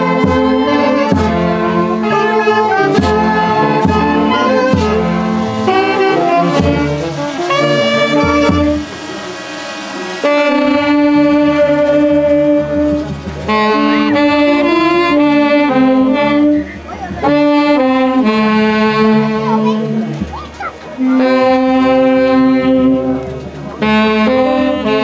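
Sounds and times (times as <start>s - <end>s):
saxophones and violin playing: 0.0s - 25.0s
bass drum beats: 2.8s - 9.4s.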